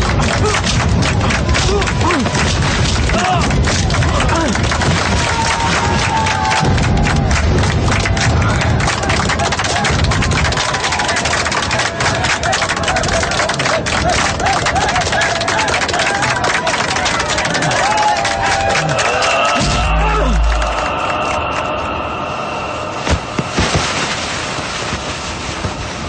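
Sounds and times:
rapid hand-clapping: 0.0s - 21.6s
crowd shouting and cheering: 0.0s - 23.1s.

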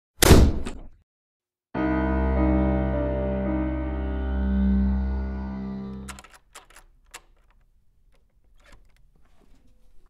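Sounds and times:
soft piano music: 1.8s - 6.1s.

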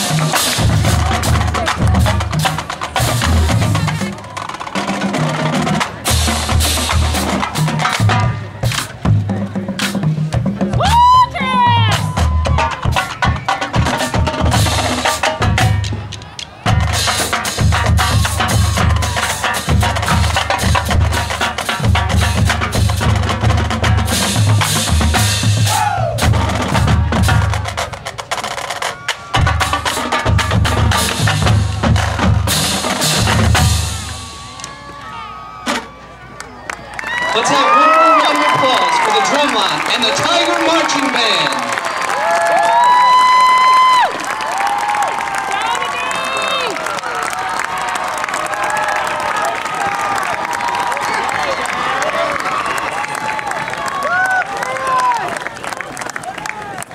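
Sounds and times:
snare and tenor drums: 0.0s - 34.4s.

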